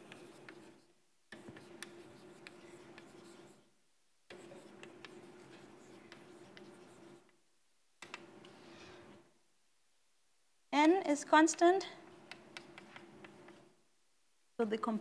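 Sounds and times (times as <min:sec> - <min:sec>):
chalk tapping: 0:00.0 - 0:03.6, 0:04.3 - 0:07.4, 0:12.2 - 0:13.7
chalk scratching on blackboard: 0:00.0 - 0:03.7, 0:04.3 - 0:07.3, 0:12.3 - 0:13.8.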